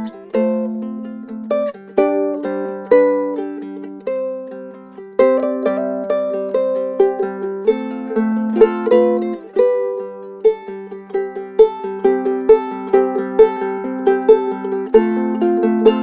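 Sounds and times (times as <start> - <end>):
ukulele plucked chords: 0.0 - 16.0.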